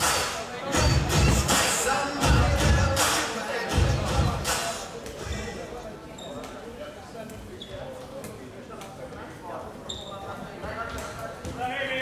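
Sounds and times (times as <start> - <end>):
shoes squeaking on floor: 5.0 - 12.0.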